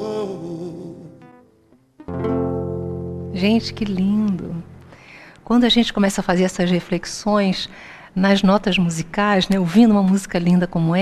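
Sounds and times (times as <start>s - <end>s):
acoustic guitar plucks: 0.0s - 5.1s
guitar chord ringing: 0.0s - 5.1s.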